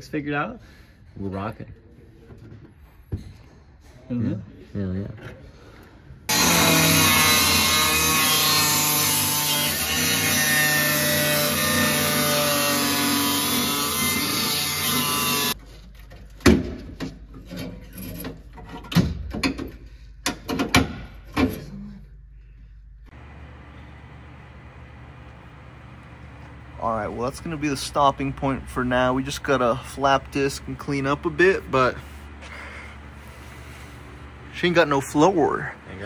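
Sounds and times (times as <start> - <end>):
power tool cutting sheet metal: 6.3 - 15.6
low steady hum: 21.4 - 36.0.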